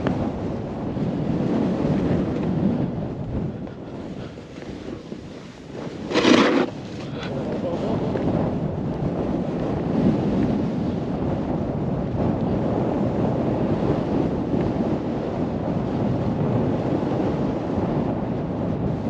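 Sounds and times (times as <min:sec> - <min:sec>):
wind rushing over microphone: 0:00.0 - 0:19.0.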